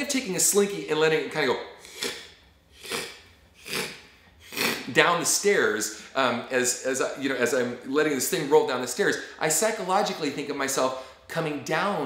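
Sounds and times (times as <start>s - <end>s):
man making shh hisses: 1.8s - 4.9s.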